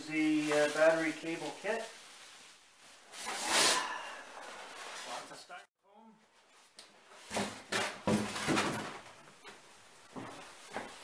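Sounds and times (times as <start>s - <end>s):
foam packaging rustling and scraping: 0.0s - 3.9s.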